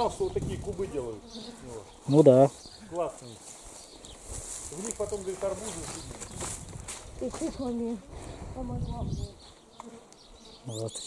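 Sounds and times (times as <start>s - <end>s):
flying insect buzzing: 0.0s - 11.0s.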